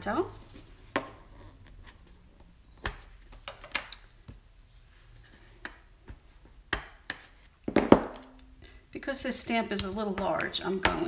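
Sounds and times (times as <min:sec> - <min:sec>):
ink pad tapping plastic stamp: 0:09.8 - 0:11.0.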